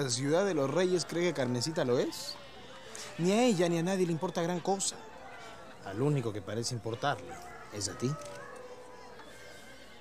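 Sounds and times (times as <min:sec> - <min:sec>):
outdoor ambience: 0:00.0 - 0:10.0.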